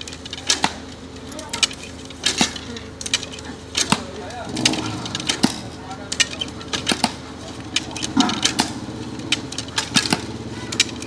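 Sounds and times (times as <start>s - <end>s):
steady engine hum: 0.0s - 11.0s
sharp knocks and clacks: 1.6s - 11.0s.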